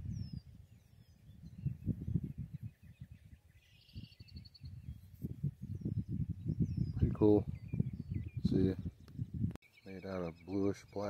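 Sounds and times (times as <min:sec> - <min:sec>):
wind rumbling on microphone: 0:00.0 - 0:09.6
small birds chirping: 0:00.0 - 0:11.0.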